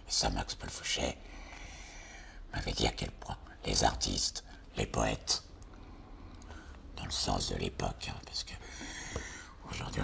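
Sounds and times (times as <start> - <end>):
man talking: 2.5 - 5.5, 7.0 - 8.6, 9.6 - 10.0.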